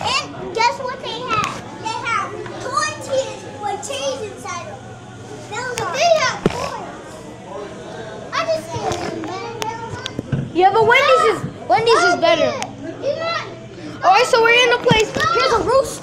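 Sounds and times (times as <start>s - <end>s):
young children chattering: 0.0s - 16.0s.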